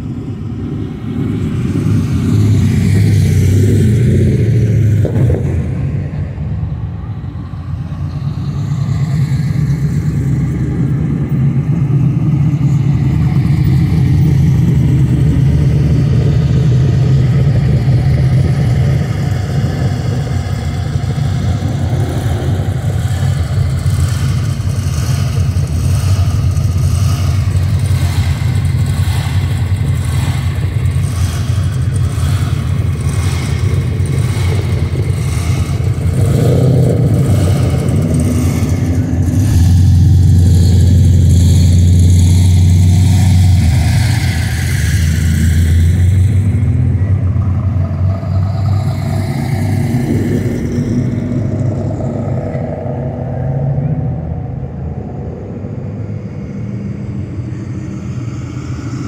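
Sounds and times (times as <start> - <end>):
car engines rumbling and revving: 0.0 - 59.0
deep exhaust note: 0.0 - 59.0.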